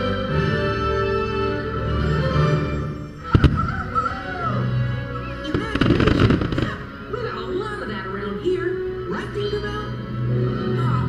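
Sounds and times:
music playing: 0.0 - 11.0
firework bursts and crackle: 3.2 - 4.4, 5.4 - 7.1.

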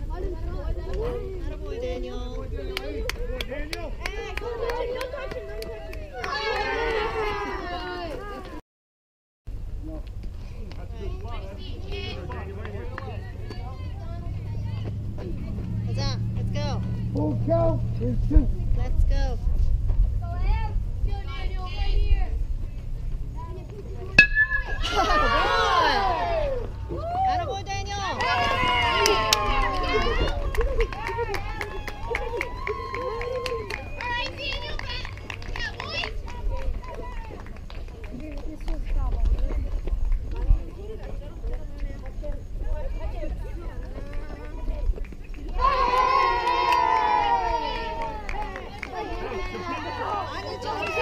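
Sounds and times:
low wind rumble on microphone: 0.0 - 4.5, 9.5 - 24.2
people yelling and cheering: 0.0 - 8.6, 24.1 - 37.5, 42.8 - 51.0.

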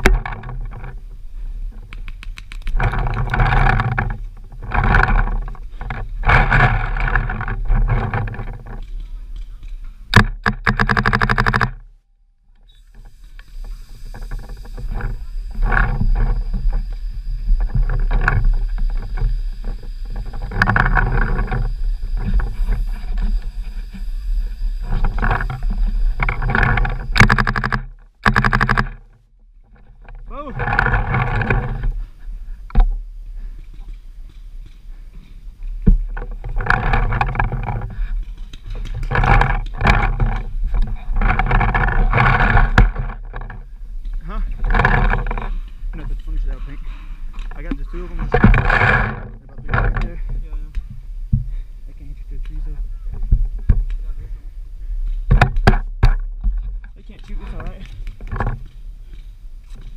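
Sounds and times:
wind rumble: 0.0 - 59.9
breath-like noises on microphone: 12.8 - 15.5, 37.8 - 38.8, 46.6 - 47.4, 50.2 - 52.0.

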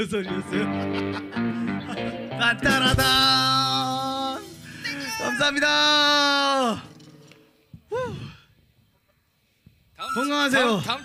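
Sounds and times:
person sighing ooh: 7.8 - 8.6.

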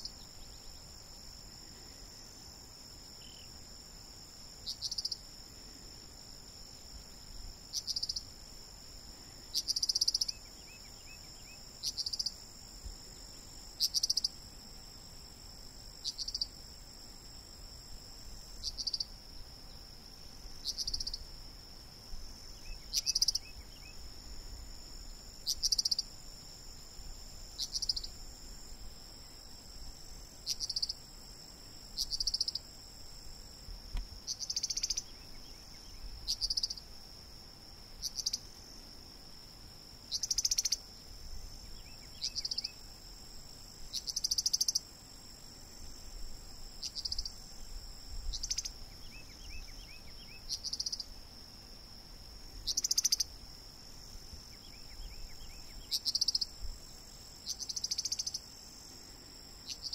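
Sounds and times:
high-pitched insect chorus: 0.0 - 59.9.

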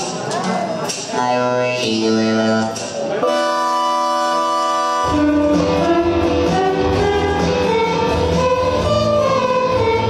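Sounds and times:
full band playing: 0.0 - 10.0.

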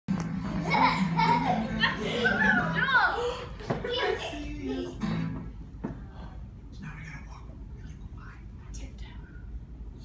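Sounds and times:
young children calling excitedly: 1.8 - 5.0
children's song playing: 3.7 - 5.5.

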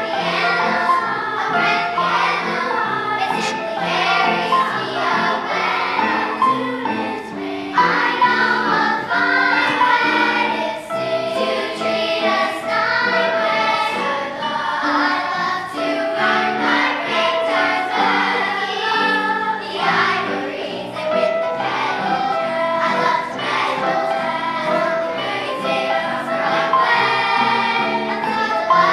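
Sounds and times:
children's choir singing: 0.0 - 28.9
electric keyboard accompaniment: 0.0 - 28.9.

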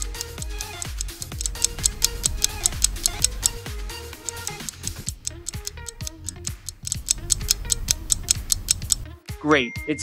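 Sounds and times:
clock-like ticking: 0.0 - 9.1
light background music: 0.0 - 10.0.

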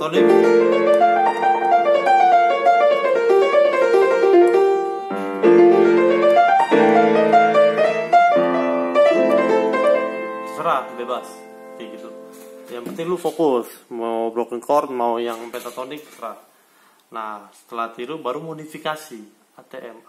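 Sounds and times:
piano playing: 0.0 - 13.3.

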